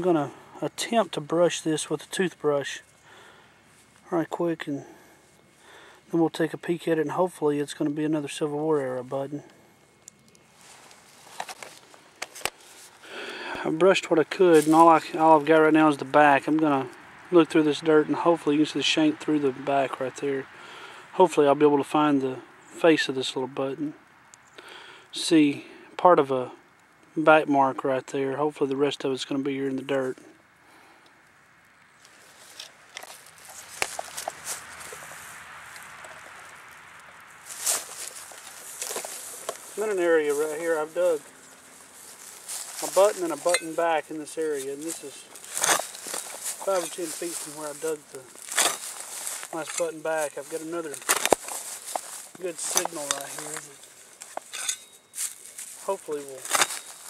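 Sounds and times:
footsteps in dry pine straw: 0.0 - 6.2, 10.4 - 16.9, 32.0 - 57.0.

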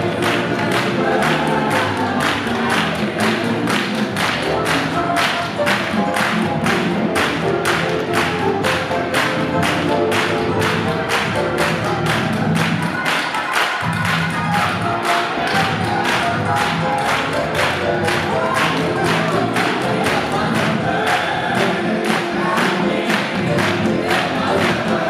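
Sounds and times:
gospel music: 0.0 - 25.0
group clapping in rhythm: 0.0 - 25.0.

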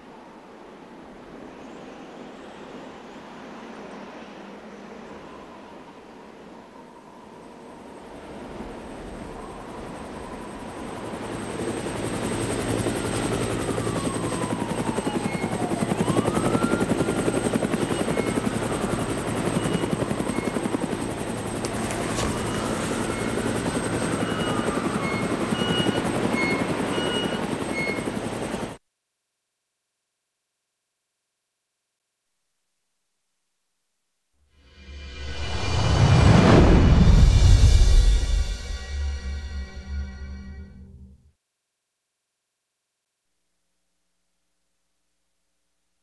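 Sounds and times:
helicopter rotor chop: 8.8 - 28.8
faint gliding tones: 34.6 - 41.0.

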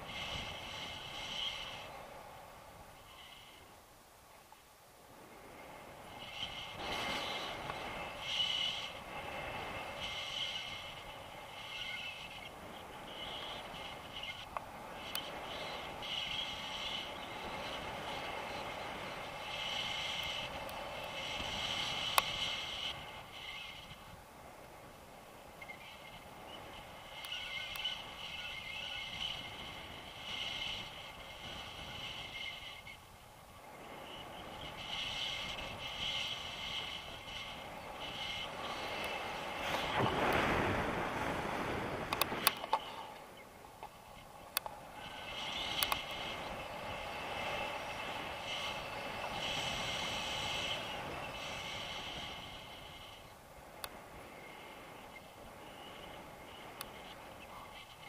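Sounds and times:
wind rushing over microphone: 5.0 - 58.0.

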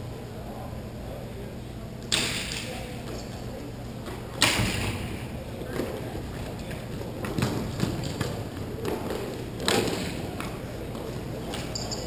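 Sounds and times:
sharp cracks in rink hall: 2.0 - 3.2, 4.2 - 11.7.

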